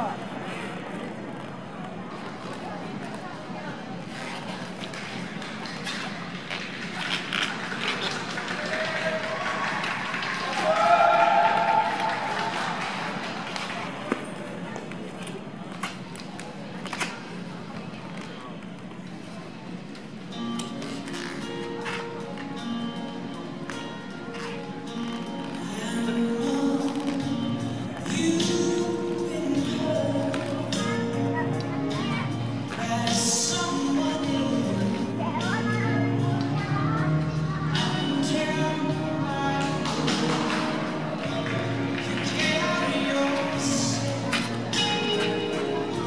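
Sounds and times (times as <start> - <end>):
skating program music: 0.0 - 46.0
voices in ice rink hall: 0.0 - 46.0.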